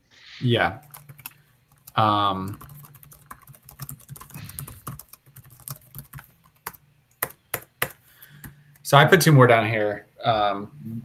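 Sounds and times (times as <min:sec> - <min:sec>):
computer keyboard typing: 0:00.8 - 0:08.9.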